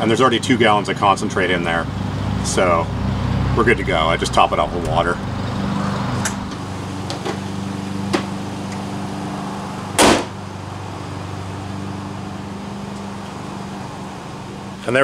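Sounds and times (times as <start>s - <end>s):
low hum: 1.5s - 9.9s
van hood slamming shut: 9.9s - 10.4s.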